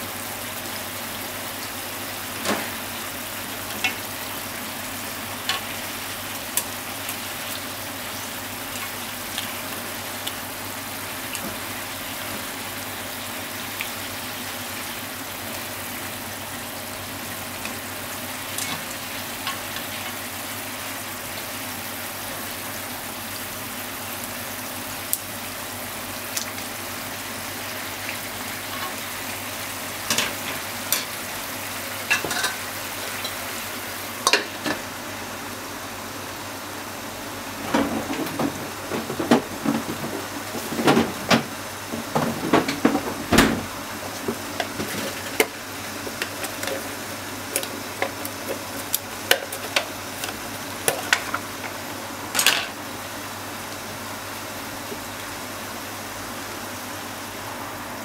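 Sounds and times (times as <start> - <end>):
radish sizzling in a frying pan: 0.0 - 58.0.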